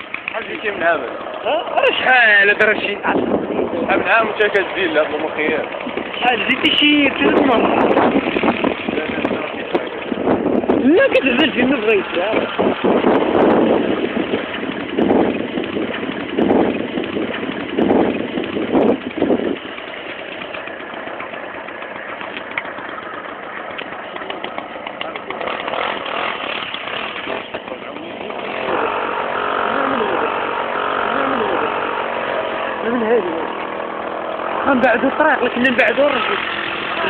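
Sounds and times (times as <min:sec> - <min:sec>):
loud bursts: 0:00.0 - 0:37.0
small engine running: 0:00.0 - 0:37.0.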